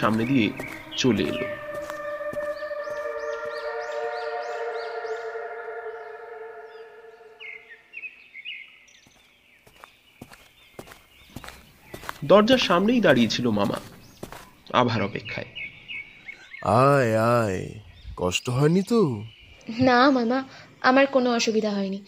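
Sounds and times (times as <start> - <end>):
sustained drone chord: 0.0 - 7.9
high repeated chirping calls: 0.0 - 20.4.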